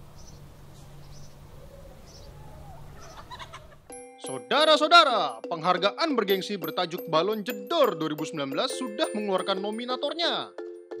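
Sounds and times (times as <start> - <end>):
low farmyard background: 0.0 - 3.9.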